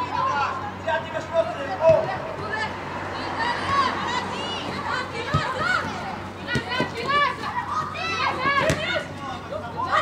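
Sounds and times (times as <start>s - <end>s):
women shouting and calling: 1.9s - 10.0s.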